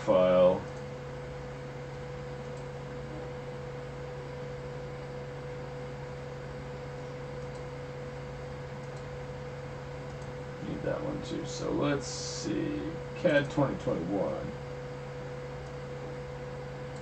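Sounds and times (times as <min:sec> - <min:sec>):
low hum: 0:00.0 - 0:17.0.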